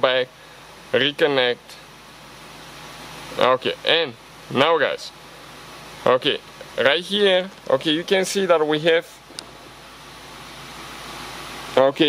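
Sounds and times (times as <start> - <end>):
car engine idling inside cabin: 0.0 - 12.0
ventilation hiss: 0.0 - 12.0.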